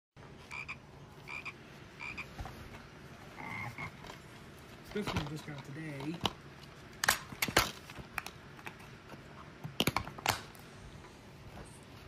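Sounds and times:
cartoon frog croaks: 0.5 - 2.3, 3.4 - 4.0.

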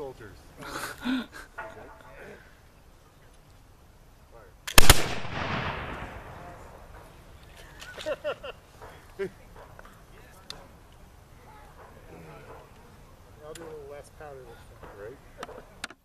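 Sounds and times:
voices: 0.0 - 4.8, 5.6 - 16.0
musket shots: 4.7 - 6.8.

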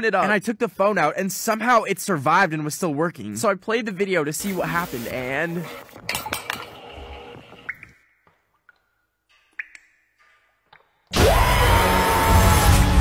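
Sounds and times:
dishwasher water spraying: 4.4 - 5.8
loud bass-heavy music: 11.2 - 13.0.

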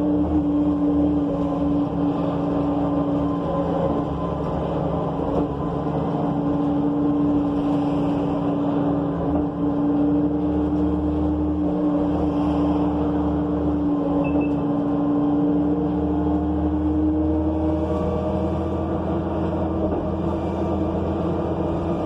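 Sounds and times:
bus engine humming: 0.0 - 22.0
road noise and low rumble: 0.0 - 22.0.

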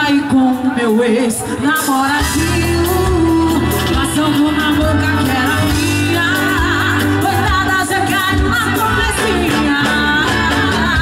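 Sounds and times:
drums: 0.0 - 11.0
electric guitar: 0.0 - 11.0
live band playing: 0.0 - 11.0
woman singing: 0.0 - 11.0.

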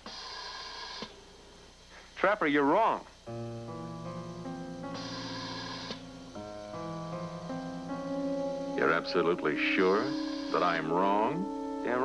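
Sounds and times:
high-pitched electronic tone: 8.8 - 12.0.

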